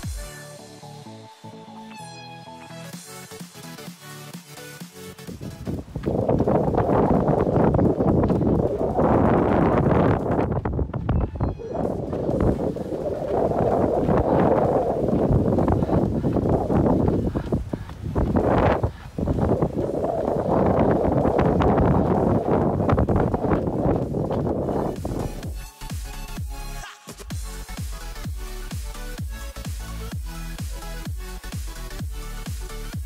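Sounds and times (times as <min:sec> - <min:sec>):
wind buffeting microphone: 0:05.4 - 0:25.6.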